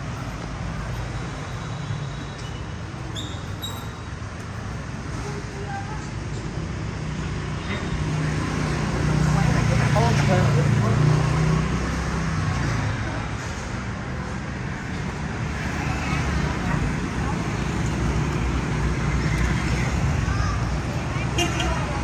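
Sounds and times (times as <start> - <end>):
motorbike engines: 0.0 - 22.0.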